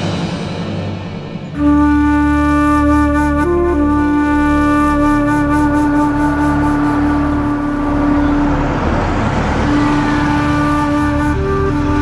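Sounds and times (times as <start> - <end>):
low musical bed: 0.0 - 12.0
rush of noise: 0.0 - 12.0
held flute-like note: 1.3 - 12.0.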